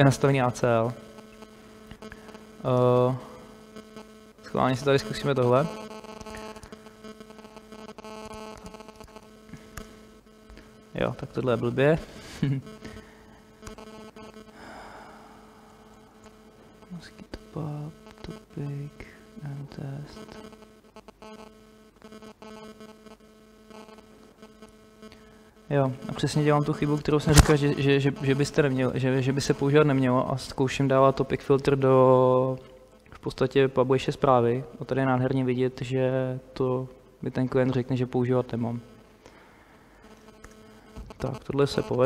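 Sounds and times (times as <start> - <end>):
electrical mains hum: 0.0 - 42.0.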